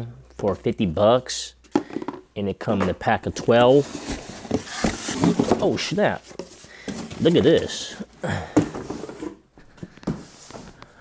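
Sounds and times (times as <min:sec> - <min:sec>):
cardboard rustling and scraping: 0:03.4 - 0:10.8.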